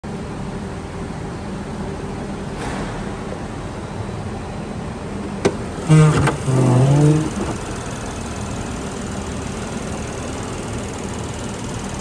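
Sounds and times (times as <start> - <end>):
car engine idling: 5.5 - 12.0.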